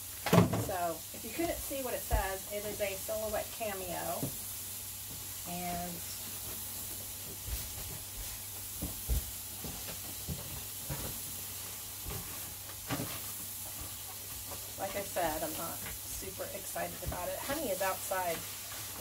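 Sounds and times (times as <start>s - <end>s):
background hiss and hum: 0.0s - 19.0s.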